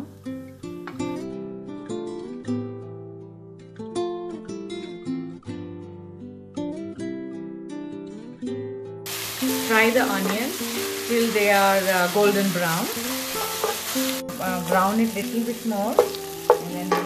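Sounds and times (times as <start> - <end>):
acoustic guitar plucking and strumming: 0.0 - 17.0.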